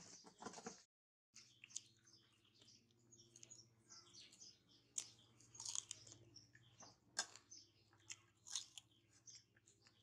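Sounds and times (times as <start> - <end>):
crisp fruit being chewed: 1.4 - 10.0.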